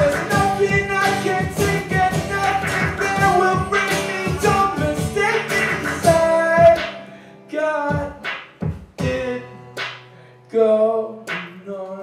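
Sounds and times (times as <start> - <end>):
electronic hand percussion: 0.0 - 7.0
person singing: 0.0 - 8.3, 9.0 - 9.8, 10.4 - 12.0
acoustic guitar strumming: 0.0 - 12.0.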